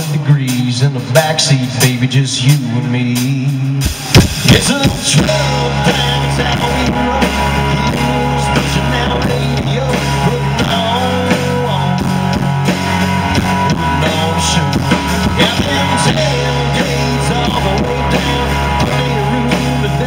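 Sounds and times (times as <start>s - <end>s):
country-rock band playing: 0.0s - 20.0s.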